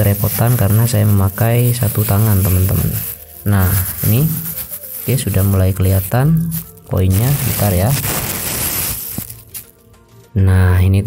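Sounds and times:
plastic bag rustling: 0:00.0 - 0:09.9.

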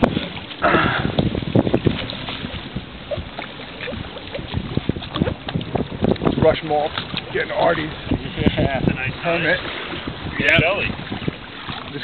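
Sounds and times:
water noise: 0:00.0 - 0:12.0
wind buffeting microphone: 0:00.0 - 0:12.0.

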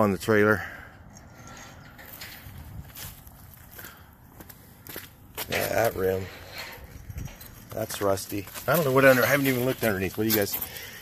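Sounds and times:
footsteps on asphalt: 0:02.6 - 0:05.6, 0:07.1 - 0:11.0.

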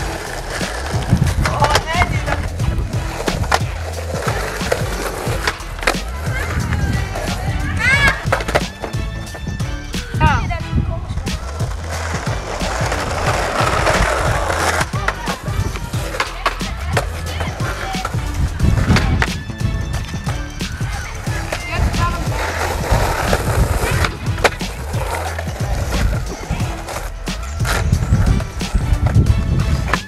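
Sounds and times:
skateboard decks clacking: 0:00.0 - 0:10.2, 0:11.1 - 0:30.0
skateboard wheels rolling on asphalt: 0:00.0 - 0:30.0.

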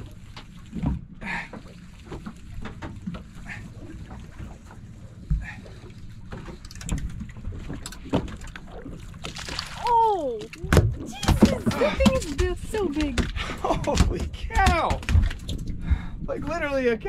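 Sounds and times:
wind and water against hull: 0:00.0 - 0:17.0.

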